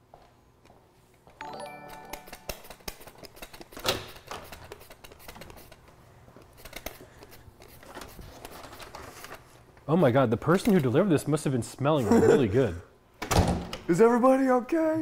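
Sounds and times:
chime of steady notes: 1.4s - 2.5s.

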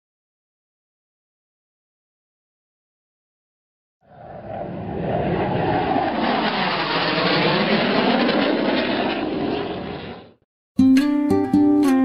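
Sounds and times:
rushing rumbling noise: 4.1s - 10.4s.

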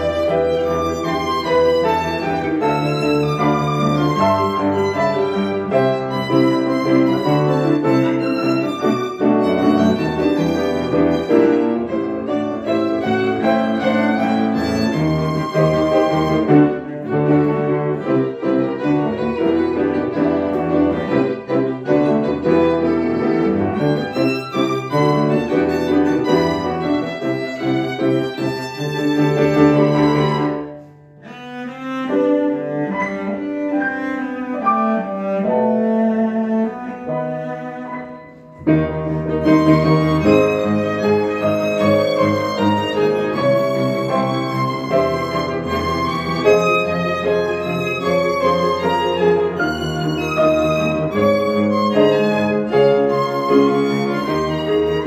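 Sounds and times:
bowed violin melody: 0.0s - 55.0s
cello: 0.0s - 55.0s
piano chords: 0.0s - 55.0s
string ensemble playing: 0.0s - 55.0s.

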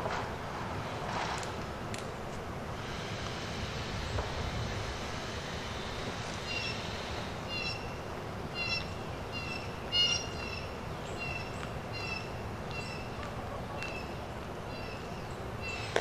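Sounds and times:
faint background noise: 0.0s - 16.0s.

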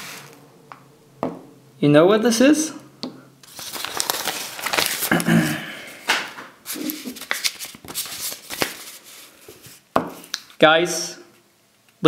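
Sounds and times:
paper rustling and crinkling: 3.4s - 10.6s.

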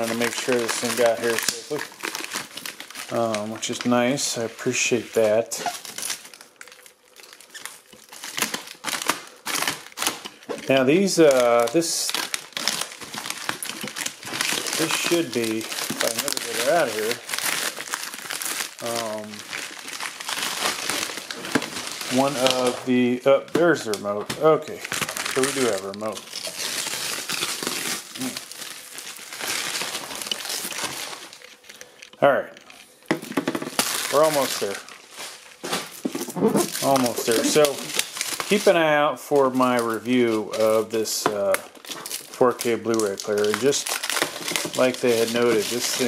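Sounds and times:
plastic packaging crinkling: 0.0s - 46.0s.

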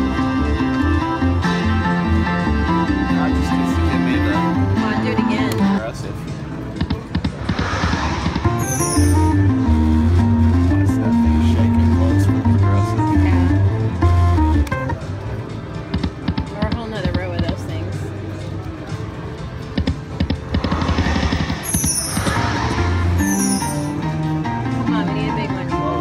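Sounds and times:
deep bass notes: 7.3s - 15.0s
electronic slot machine melody: 8.5s - 15.2s, 21.6s - 25.2s
clicking and chiming game sounds: 8.6s - 9.4s, 21.6s - 22.4s, 23.2s - 24.0s.

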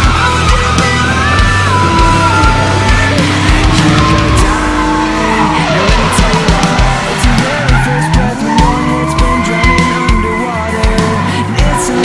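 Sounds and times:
background music with steady beat: 0.0s - 12.0s
car engine revving: 0.0s - 12.0s
tyres screeching: 0.0s - 12.0s.

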